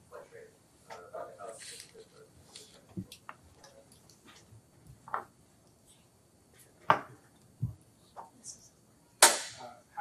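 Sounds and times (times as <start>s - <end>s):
sharp knock: 9.2s - 9.6s.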